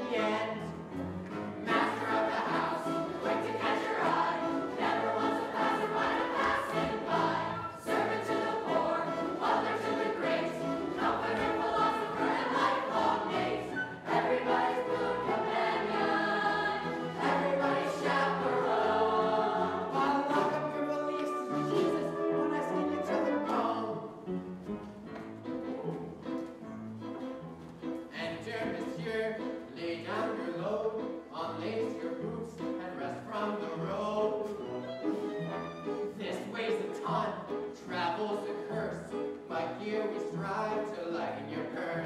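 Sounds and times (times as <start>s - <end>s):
chorus singing with accompaniment: 1.5s - 24.0s.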